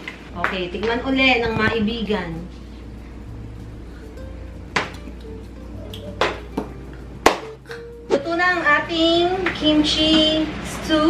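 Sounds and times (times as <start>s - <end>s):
soft background music: 0.6s - 11.0s.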